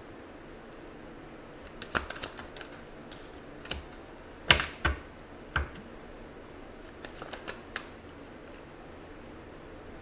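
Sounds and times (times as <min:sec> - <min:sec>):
cards rustling: 0:01.6 - 0:04.0, 0:06.8 - 0:08.6
cards snapping: 0:01.6 - 0:04.0, 0:06.9 - 0:08.6.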